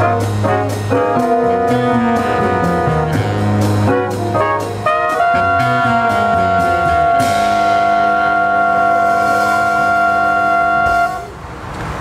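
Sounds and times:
jazz band holding a chord: 0.0s - 11.3s.

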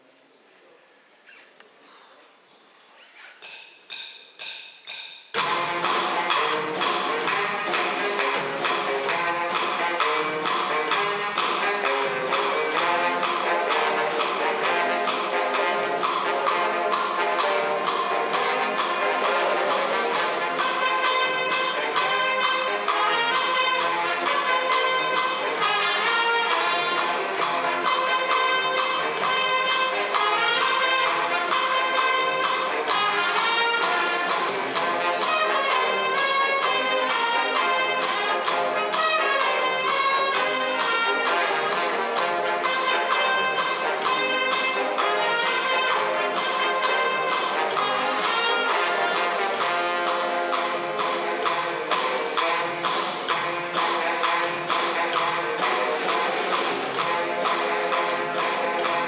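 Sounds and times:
brass band playing lively tune: 5.4s - 59.0s.

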